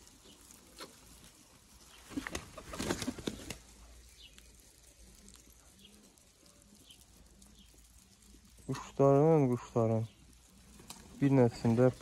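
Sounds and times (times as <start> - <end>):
pigeons cooing: 0.0 - 6.1
pigeon wings flapping: 1.9 - 3.9, 10.6 - 12.0.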